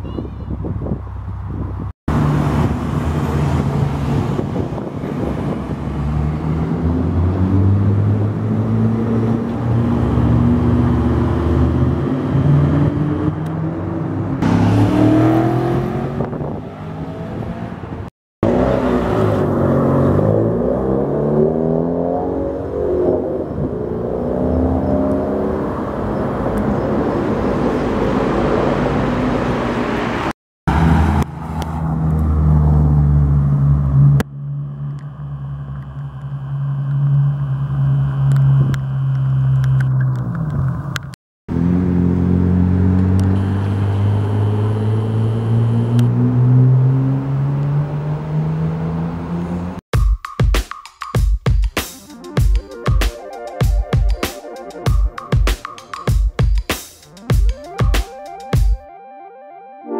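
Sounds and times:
car engines accelerating: 0:01.2 - 0:49.8.

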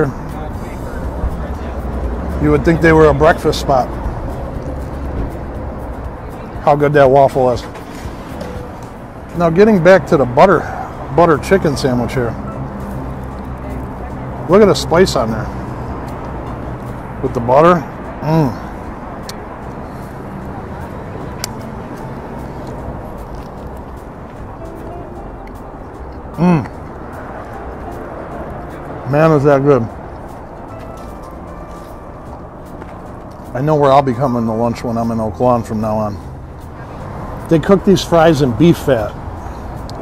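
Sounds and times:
low traffic hum: 0:00.0 - 0:40.0.

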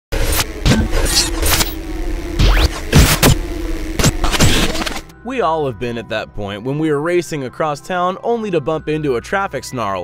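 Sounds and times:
rising sweep: 0:00.1 - 0:05.1
whooshes and glitchy hits: 0:00.1 - 0:05.1
steady low hum: 0:00.1 - 0:05.2.

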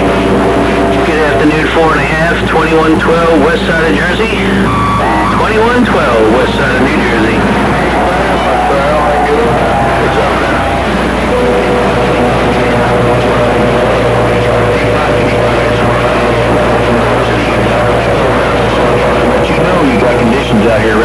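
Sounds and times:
heterodyne whistle: 0:00.0 - 0:21.0
low hum: 0:00.0 - 0:21.0
radio static: 0:00.0 - 0:21.0.

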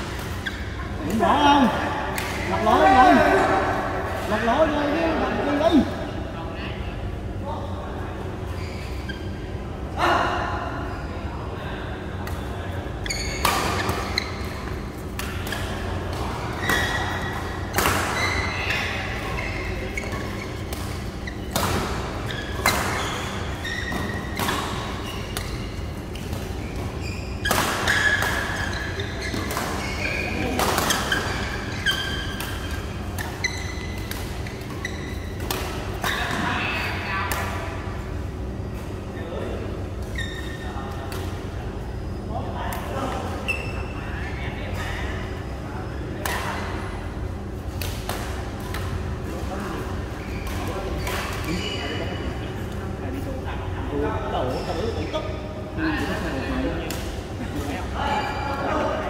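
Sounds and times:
steady low hum: 0:00.0 - 0:59.0
rackets hitting shuttlecock: 0:13.3 - 0:18.8.

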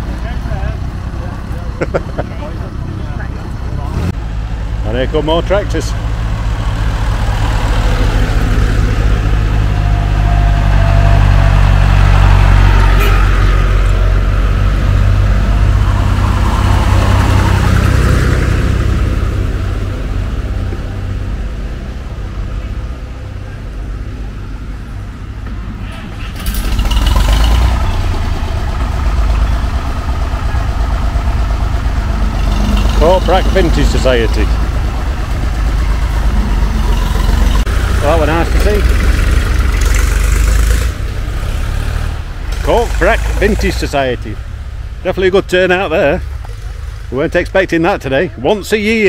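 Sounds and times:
tractor engines chugging past: 0:00.0 - 0:49.0.

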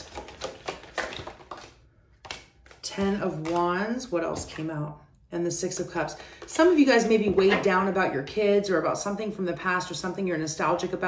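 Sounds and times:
cards being shuffled by hand: 0:00.0 - 0:04.7.

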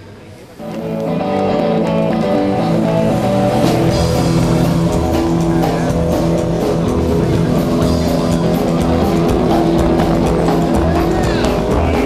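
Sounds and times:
gliding pitch sound: 0:00.6 - 0:11.6
rockabilly band playing: 0:00.6 - 0:12.0.

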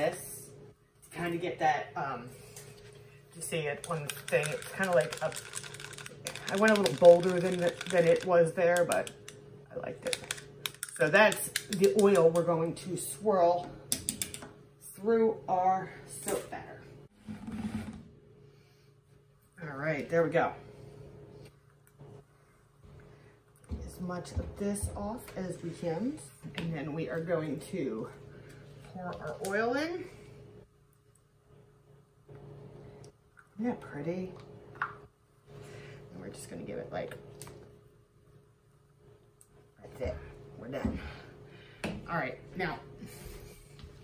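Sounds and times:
low steady hum: 0:00.0 - 0:44.0
stick blender buzzing: 0:03.8 - 0:09.4.

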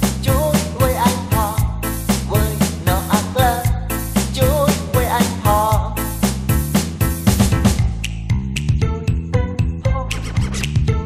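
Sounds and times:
drum and cymbals: 0:00.0 - 0:08.1
steady bass: 0:00.0 - 0:11.0.

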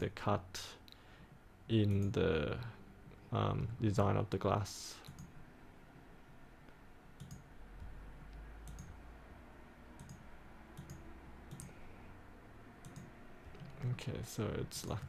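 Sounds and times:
low background hum: 0:00.0 - 0:15.0
computer mouse clicks: 0:05.0 - 0:05.3, 0:07.2 - 0:09.0, 0:10.0 - 0:10.2, 0:10.8 - 0:11.8, 0:12.8 - 0:13.8.

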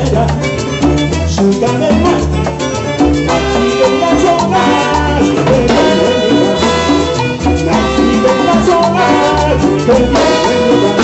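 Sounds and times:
brass instruments: 0:00.0 - 0:11.0
timbales and percussion beat: 0:00.0 - 0:11.0.

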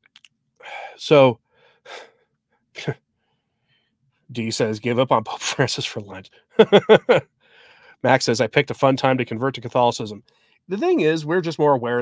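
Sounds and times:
man breathing: 0:00.6 - 0:02.4, 0:03.2 - 0:04.0, 0:07.4 - 0:08.0, 0:10.3 - 0:10.7.

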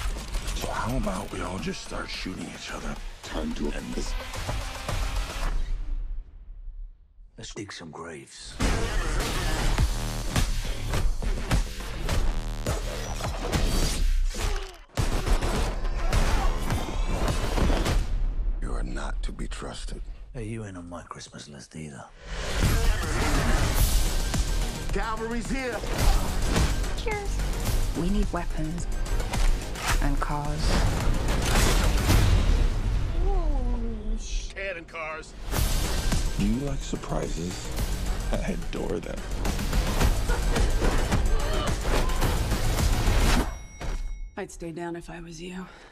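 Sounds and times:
action trailer score: 0:00.0 - 0:21.4, 0:22.0 - 0:45.9.

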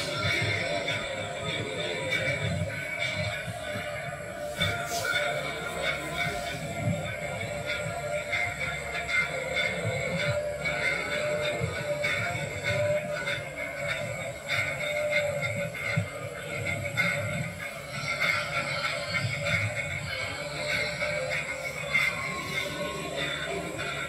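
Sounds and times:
music from television speakers: 0:00.0 - 0:24.0.

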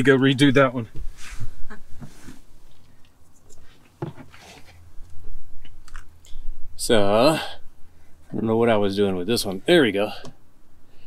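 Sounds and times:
fabric rustling: 0:01.0 - 0:05.0.

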